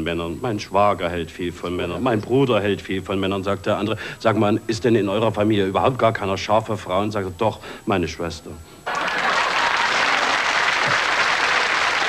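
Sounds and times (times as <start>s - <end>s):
audience applauding: 8.9s - 12.0s.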